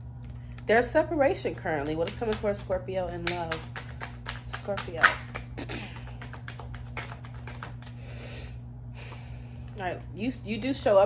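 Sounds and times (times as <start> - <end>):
cards being shuffled: 1.8 - 8.0.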